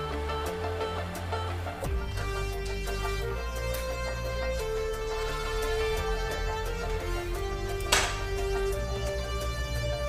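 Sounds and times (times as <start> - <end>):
drum and bass music: 0.0 - 10.0.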